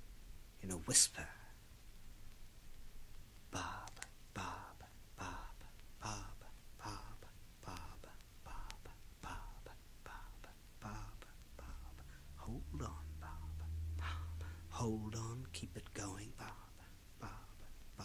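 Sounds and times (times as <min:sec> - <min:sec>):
low steady hum: 0:00.0 - 0:18.0
man whispering: 0:00.6 - 0:01.6, 0:03.5 - 0:18.0.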